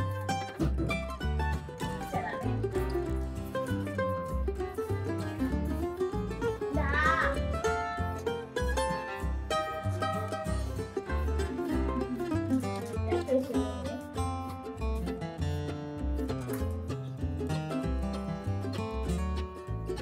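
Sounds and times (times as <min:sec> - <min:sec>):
plucked string melody: 0:00.0 - 0:20.0
rhythmic bass beat: 0:00.0 - 0:20.0.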